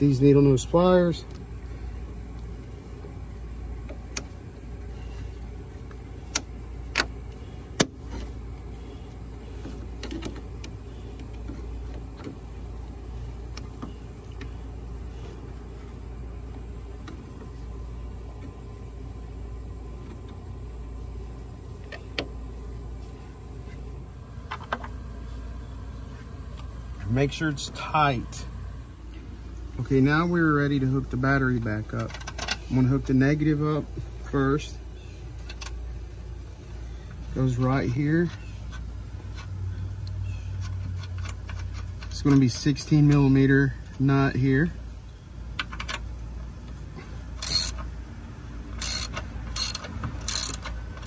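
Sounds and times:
low background rumble: 0.0s - 51.0s.

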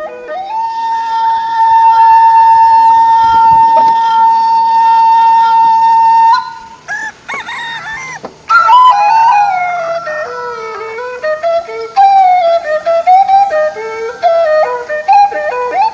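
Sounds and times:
flute-led music: 0.0s - 15.9s.

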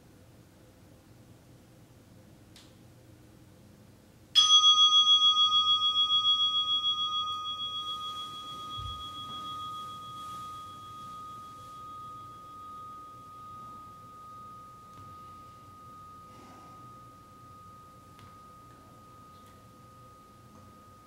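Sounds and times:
meditation bell ringing: 4.4s - 21.0s.

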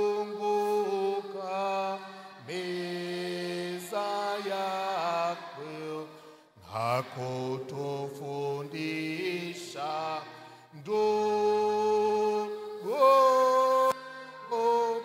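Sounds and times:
man singing a hymn: 0.0s - 15.0s
man breathing: 6.2s - 6.6s, 10.4s - 10.8s.

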